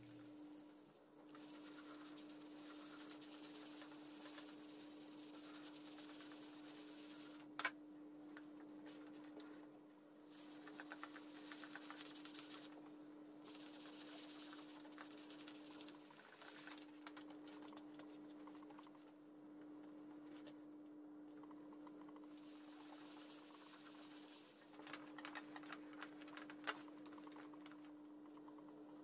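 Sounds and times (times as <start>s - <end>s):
brush scrubbing leather: 1.4s - 7.4s, 10.3s - 12.7s, 13.5s - 16.6s, 22.4s - 24.6s.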